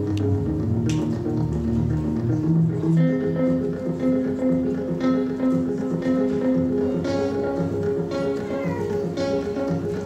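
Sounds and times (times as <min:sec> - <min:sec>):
solo electric guitar melody: 0:00.0 - 0:10.0.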